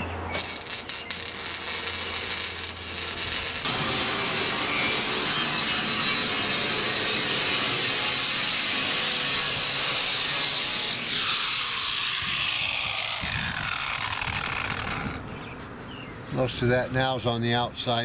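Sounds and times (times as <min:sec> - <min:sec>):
angle grinder grinding metal: 0:00.4 - 0:15.2.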